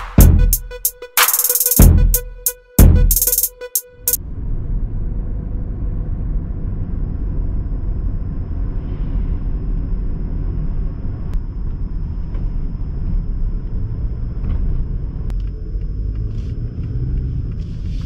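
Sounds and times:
car road and engine rumble: 4.2 - 18.0.

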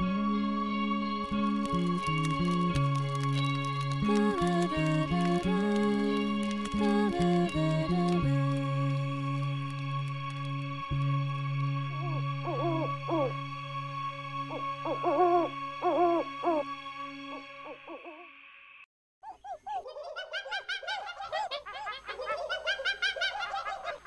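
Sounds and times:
soft music chord: 0.0 - 17.8
cartoon owl hooting: 12.0 - 13.4, 14.5 - 18.3, 19.2 - 24.0.

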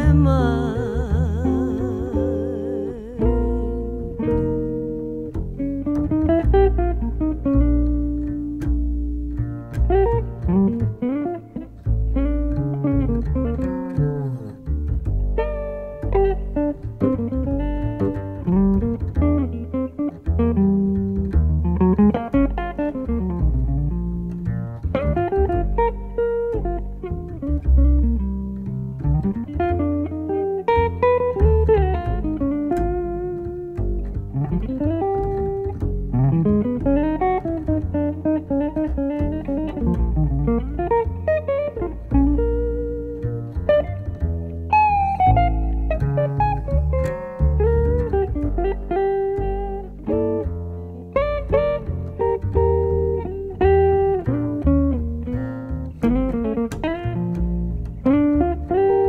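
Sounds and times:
bass line: 0.0 - 59.0
guitar melody with bending notes: 0.0 - 59.0.

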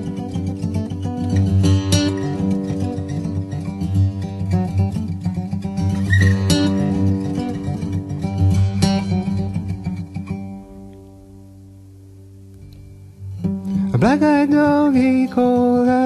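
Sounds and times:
acoustic guitar playing: 0.0 - 16.0.

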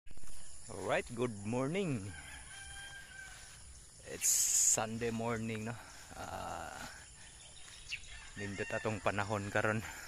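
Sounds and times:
rooster crowing: 1.6 - 3.8, 8.0 - 10.0.

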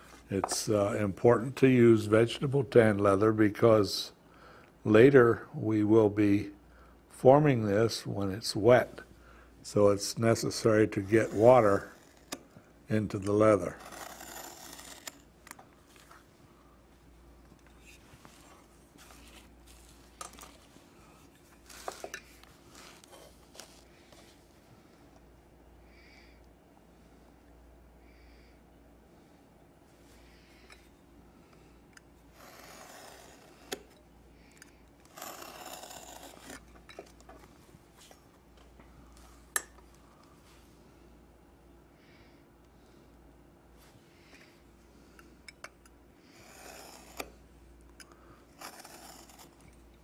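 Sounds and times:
knife scraping through leather: 13.7 - 15.3, 32.3 - 33.9, 35.0 - 36.7, 46.4 - 47.4, 48.5 - 49.6.

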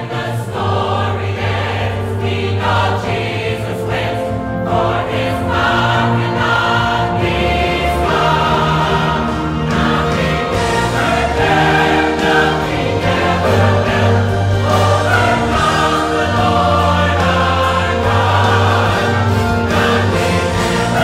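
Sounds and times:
instrumental accompaniment: 0.0 - 21.0
mixed choir singing: 0.0 - 21.0
steady bass: 0.5 - 21.0.

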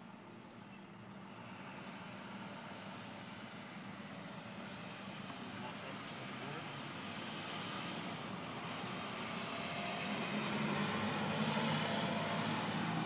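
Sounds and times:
low engine drone: 0.0 - 13.0
outdoor background noise: 0.0 - 13.0.

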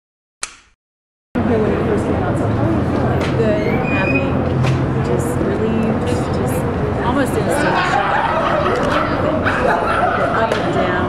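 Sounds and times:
indistinct voices: 1.4 - 11.0
street traffic noise: 1.4 - 11.0.

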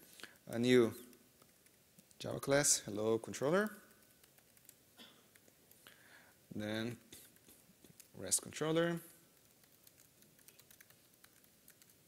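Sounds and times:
laptop keyboard typing: 0.4 - 2.2, 3.7 - 5.9, 7.0 - 8.3, 9.0 - 12.0.

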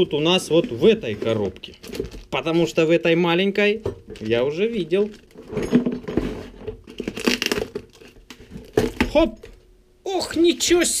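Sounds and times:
plastic film crinkling and tearing: 6.9 - 9.3.

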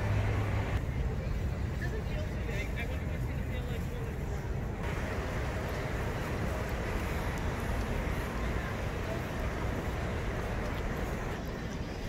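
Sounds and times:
steady low rumble: 0.0 - 12.0
faint indistinct voices: 0.8 - 12.0.

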